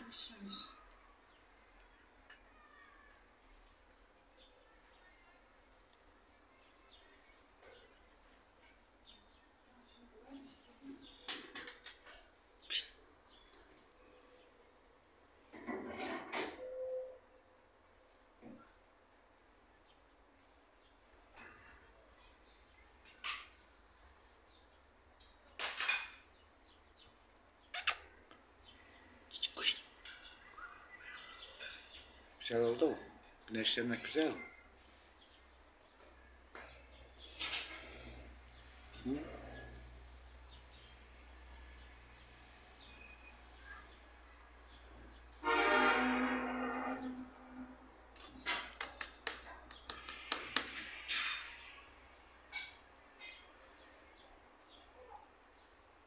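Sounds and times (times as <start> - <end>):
budgerigar chirps: 27.7 - 28.1
loud horn-like tone: 45.4 - 47.9.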